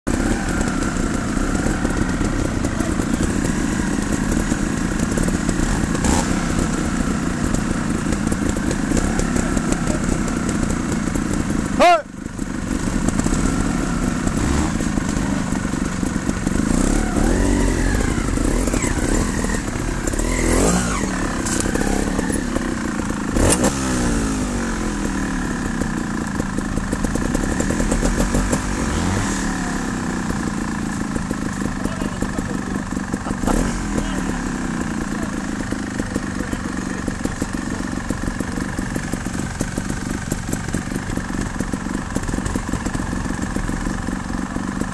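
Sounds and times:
motorcycle engines idling: 0:00.0 - 0:44.9
motorcycle throttle blips: 0:00.1 - 0:44.9.

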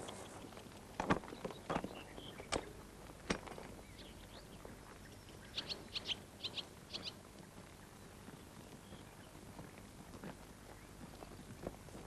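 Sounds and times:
faint outdoor background: 0:00.0 - 0:12.0
small bird chirping: 0:03.9 - 0:07.2.

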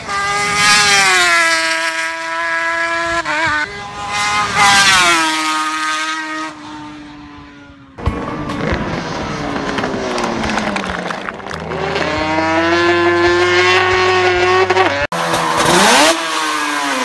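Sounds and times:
racing motorcycle accelerating: 0:00.0 - 0:17.0.

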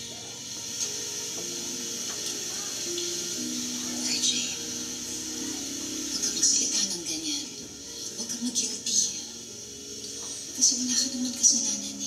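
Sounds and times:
soft music score: 0:00.0 - 0:12.0
person speaking on tv: 0:03.8 - 0:09.4.

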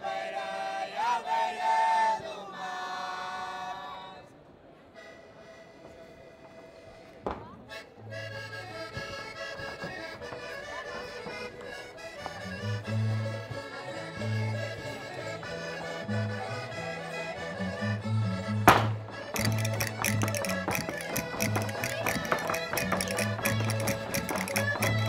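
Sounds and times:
accordion melody: 0:05.0 - 0:25.0
sharp percussive clicks: 0:19.4 - 0:25.0.

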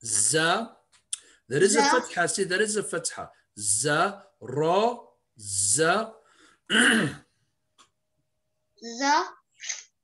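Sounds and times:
person clearing throat: 0:06.7 - 0:07.3.

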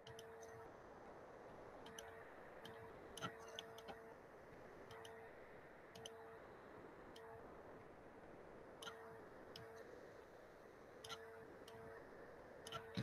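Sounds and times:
faint computer mouse clicks: 0:00.0 - 0:00.5, 0:04.9 - 0:05.2, 0:05.9 - 0:06.2
faint hum: 0:00.0 - 0:13.0.

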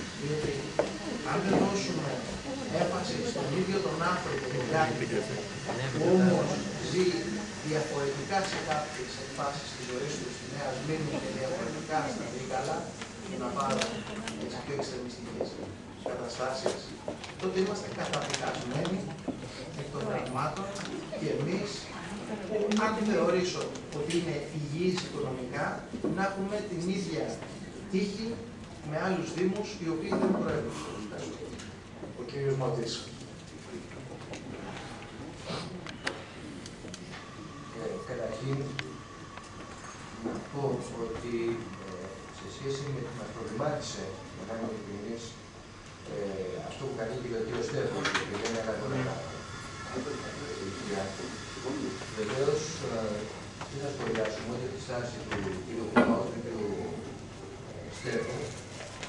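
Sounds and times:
room noise: 0:00.0 - 0:59.0.

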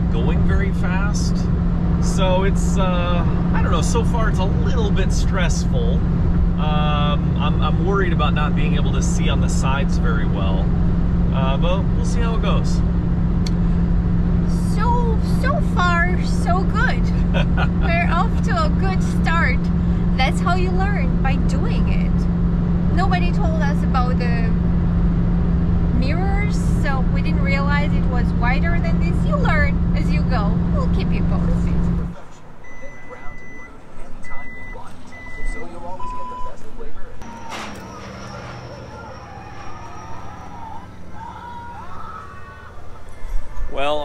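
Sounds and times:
pickup truck engine droning: 0:00.0 - 0:44.0
road noise inside cab: 0:00.0 - 0:44.0.

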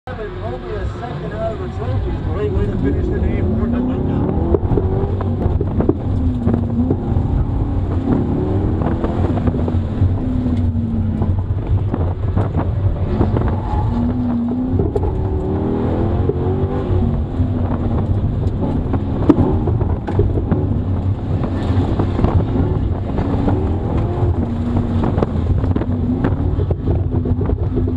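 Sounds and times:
car engine revving in cabin: 0:00.3 - 0:27.9.

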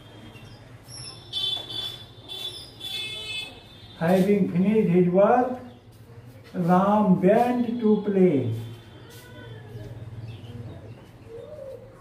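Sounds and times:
pigeon cooing: 0:10.5 - 0:12.0.

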